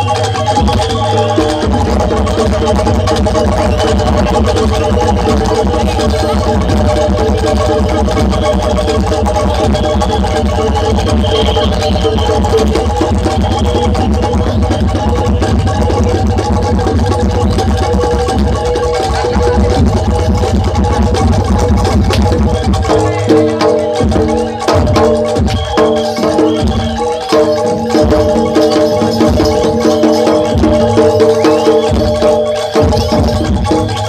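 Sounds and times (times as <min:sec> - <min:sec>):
gamelan ensemble playing: 0:00.0 - 0:34.0.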